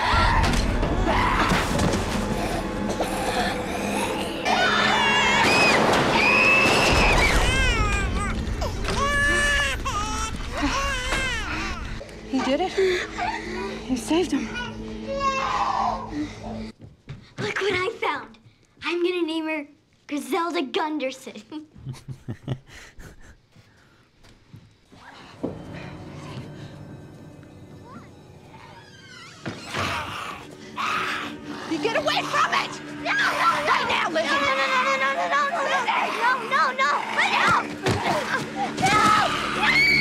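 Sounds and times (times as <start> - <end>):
soft background music: 0.0 - 16.8, 24.8 - 40.0
infant crying: 7.0 - 12.0.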